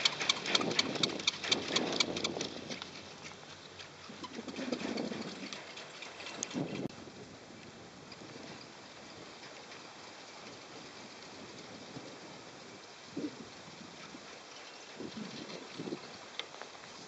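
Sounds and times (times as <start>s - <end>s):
wind hiss on chairlift: 6.4s - 17.0s.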